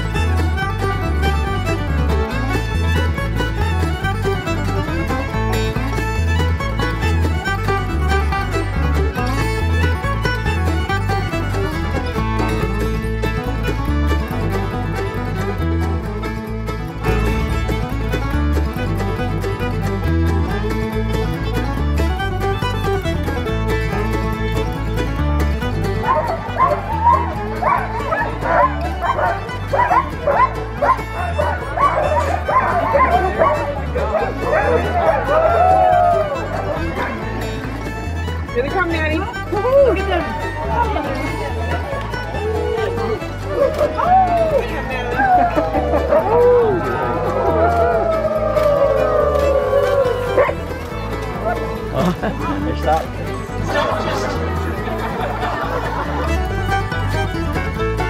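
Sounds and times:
background music: 0.0 - 58.0
sled dogs barking and yipping: 25.8 - 37.9, 39.6 - 53.0, 53.6 - 56.6.

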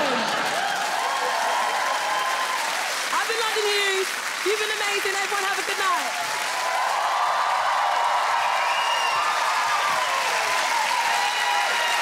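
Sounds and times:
scattered cheers: 0.0 - 3.0, 6.0 - 12.0
audience applauding: 0.0 - 12.0.

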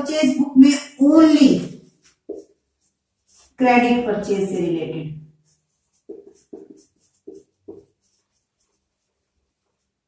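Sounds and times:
marker pen on whiteboard: 0.0 - 10.0.

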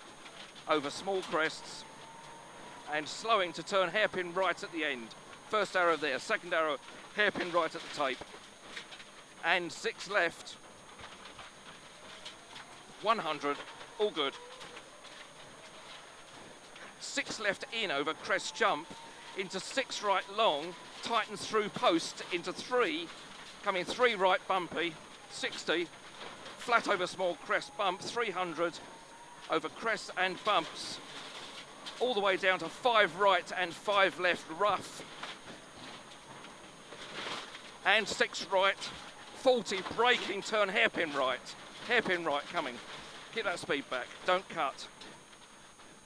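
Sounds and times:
car road noise on gravel: 0.0 - 28.8.

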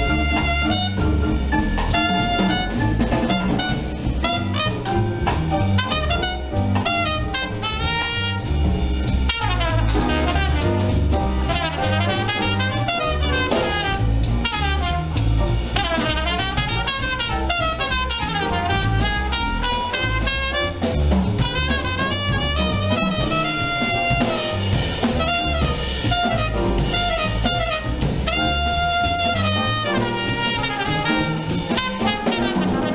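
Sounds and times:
drum kit: 0.0 - 32.9
piano: 0.0 - 32.9
trumpet melody: 0.0 - 32.9
upright double bass: 0.0 - 32.9.

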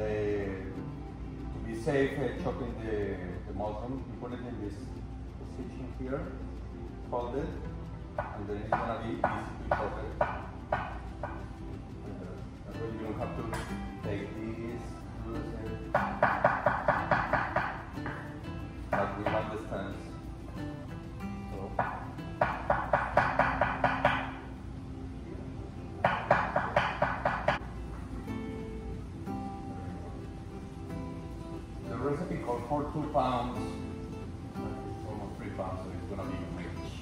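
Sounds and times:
background music: 0.0 - 37.0
knife chopping on cutting board: 26.1 - 27.6.

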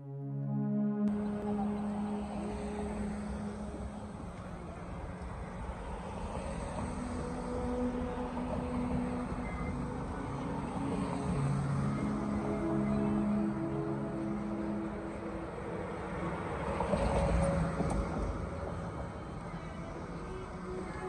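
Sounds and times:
cars driving past: 1.1 - 21.0.

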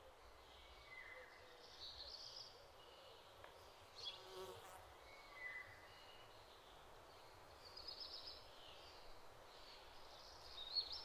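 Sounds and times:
insect buzz: 4.1 - 5.0.

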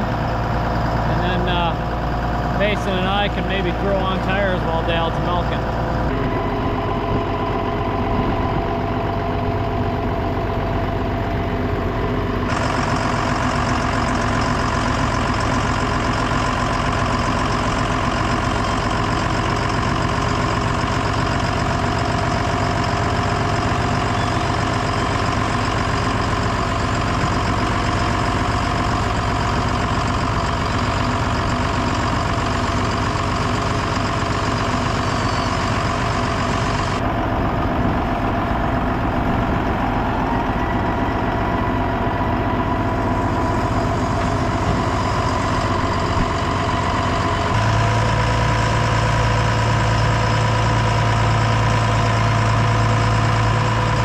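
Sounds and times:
diesel tractor engine running: 0.0 - 54.0.

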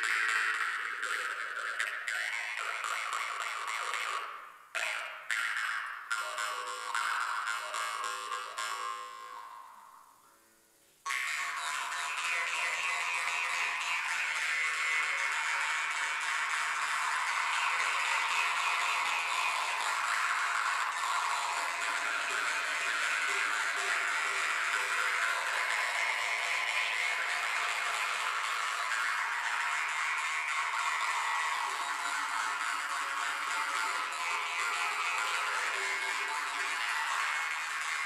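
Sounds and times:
jaw harps droning: 0.0 - 10.0, 11.1 - 38.0.

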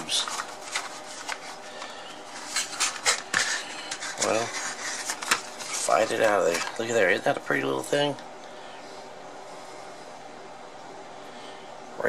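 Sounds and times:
cardboard boxes rustling: 0.0 - 6.9
steady background hiss: 0.0 - 12.0.

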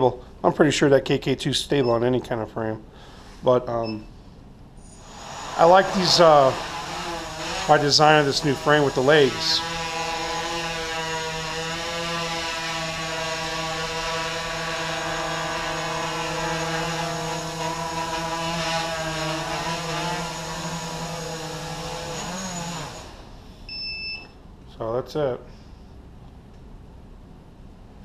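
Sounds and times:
drone motors humming: 4.8 - 23.4.

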